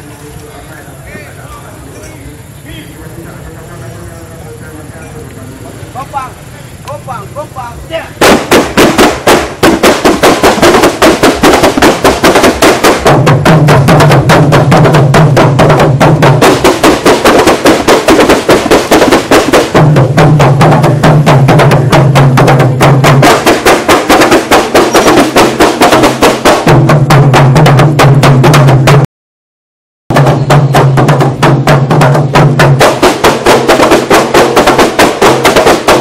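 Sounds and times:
murmur of crowd voices: 0.0s - 8.2s
hand drums beating fast: 8.2s - 29.0s, 30.1s - 36.0s.

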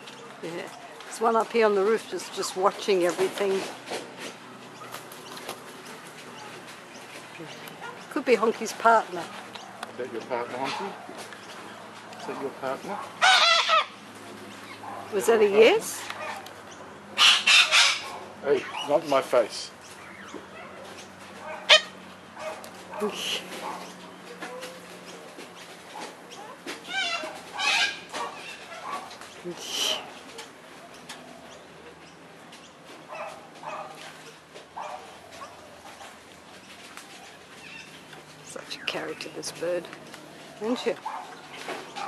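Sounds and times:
bird squawking: 13.2s - 14.0s, 17.2s - 19.0s, 20.0s - 24.0s, 26.3s - 30.2s.

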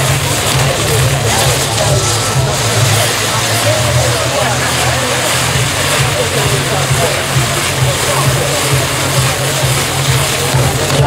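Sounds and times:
faint crowd voices: 0.0s - 11.0s
firework wheel hissing: 0.0s - 11.0s
low pulsing rumble: 0.0s - 11.0s.

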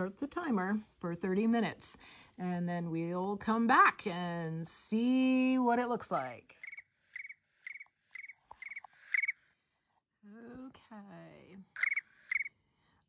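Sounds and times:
low croaking call: 6.6s - 9.4s, 11.8s - 12.5s
short even chirps: 6.6s - 9.5s, 11.8s - 12.5s.

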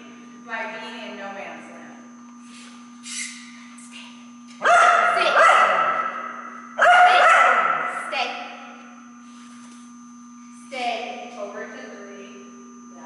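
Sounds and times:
dog howling: 6.8s - 7.8s.

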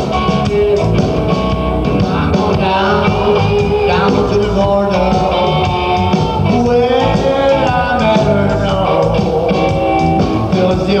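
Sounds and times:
bass: 0.0s - 11.0s
drum kit: 0.0s - 11.0s
electric guitar: 0.0s - 11.0s.

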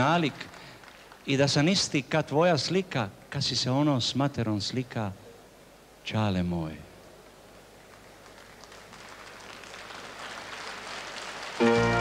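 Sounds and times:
audience applause: 0.0s - 1.6s, 7.9s - 12.0s
orchestra brass playing held chords: 11.6s - 12.0s.

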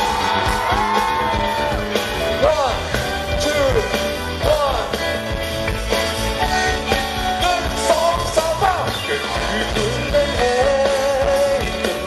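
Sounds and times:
live band playing: 0.0s - 12.0s
steady drum beat: 0.0s - 12.0s.

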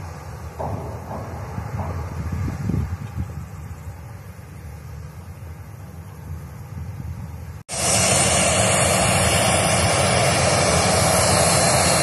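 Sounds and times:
distant jet engines humming: 0.0s - 12.0s
wind buffeting microphone: 0.4s - 12.0s.

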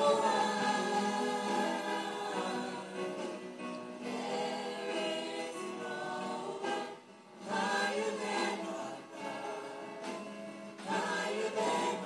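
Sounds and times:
gospel choir singing: 0.0s - 12.0s
soloists singing on microphones: 0.0s - 12.0s.

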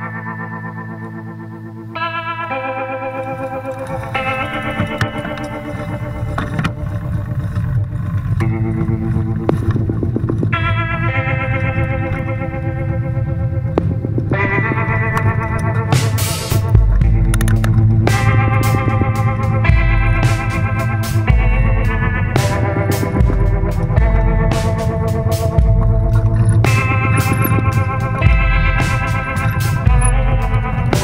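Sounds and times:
background music with held chords: 0.0s - 31.0s
low bass line: 0.0s - 31.0s.

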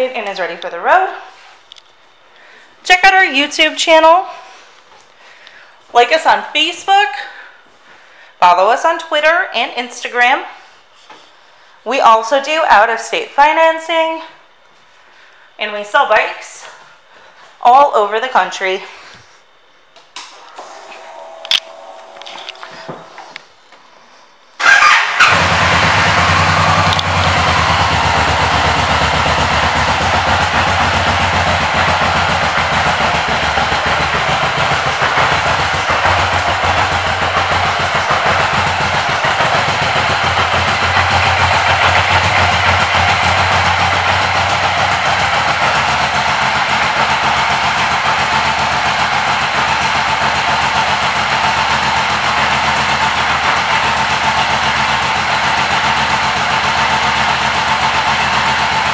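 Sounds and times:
motorcycle engine idling: 21.0s - 23.4s, 24.6s - 58.9s.

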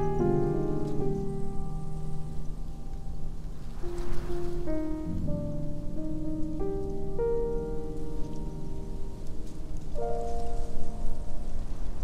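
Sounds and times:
gentle piano playing: 0.0s - 12.0s
steady hiss: 0.0s - 12.0s.

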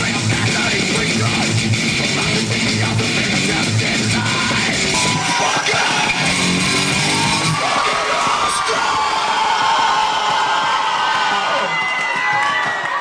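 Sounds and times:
live rock music with guitar: 0.0s - 7.7s
voices yelling and whooping: 4.9s - 13.0s.

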